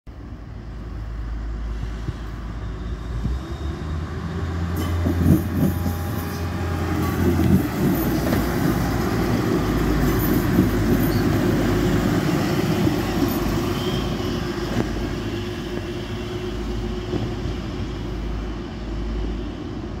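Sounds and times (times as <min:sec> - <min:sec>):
diesel train passing: 0:00.1 - 0:20.0.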